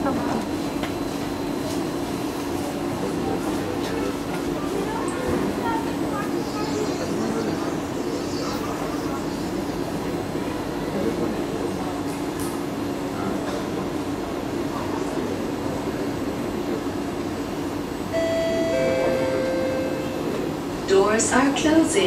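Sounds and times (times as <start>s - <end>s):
passengers chattering: 0.0s - 22.0s
train hum: 0.0s - 22.0s
two-tone door warning chime: 18.1s - 20.5s.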